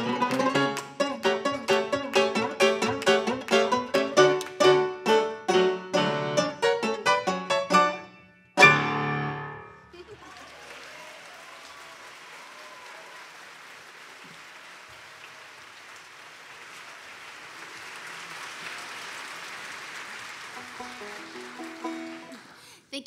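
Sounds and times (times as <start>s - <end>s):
audience applauding: 0.0s - 4.8s, 10.0s - 22.9s.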